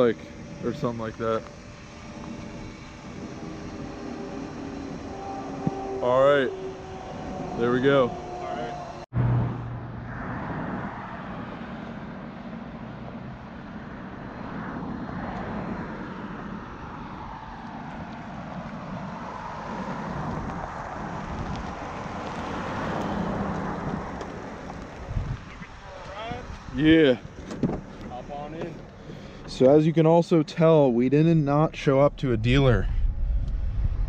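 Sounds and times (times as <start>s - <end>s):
pickup truck engine: 0.0s - 29.7s
tyres on wet gravel: 19.5s - 26.2s.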